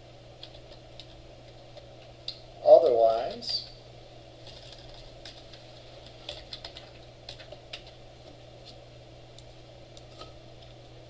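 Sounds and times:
steady low hum: 0.0 - 11.0
keyboard typing: 6.2 - 8.0.

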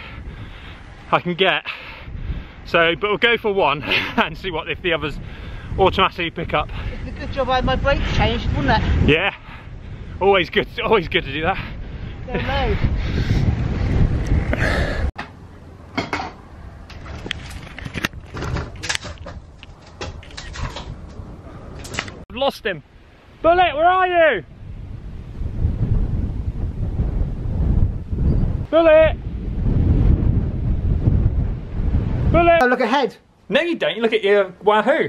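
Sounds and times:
wind buffeting microphone: 0.0 - 22.2, 22.8 - 32.6
handling clicks and knocks: 15.2 - 22.2.

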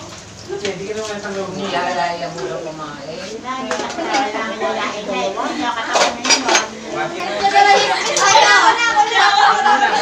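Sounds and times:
people talking: 0.0 - 10.0
cutlery clinking on plate: 5.9 - 6.7.

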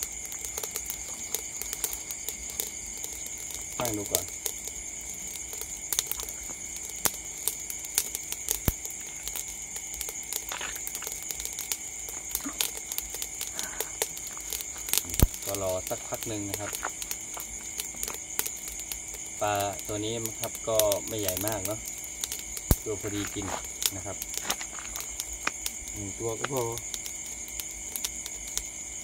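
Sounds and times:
charcoal fire crackling: 0.0 - 29.0
night insects chorus: 0.0 - 29.0
sharp clicks: 10.0 - 19.0, 20.8 - 28.4.

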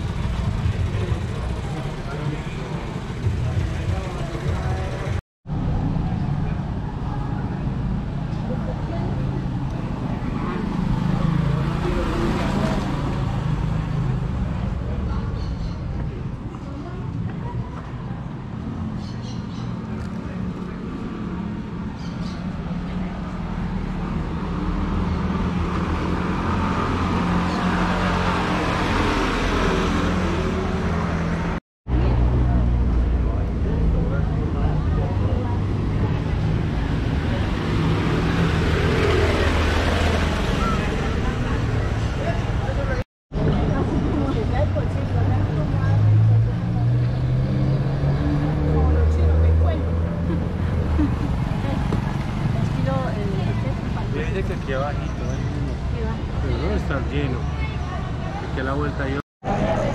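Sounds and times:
people's voices: 0.0 - 5.2, 5.8 - 59.9
motorcycle engines passing: 0.0 - 59.9.

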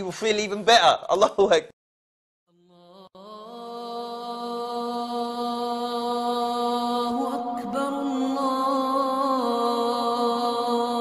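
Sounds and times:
slow chanted vocal music: 2.5 - 11.0.

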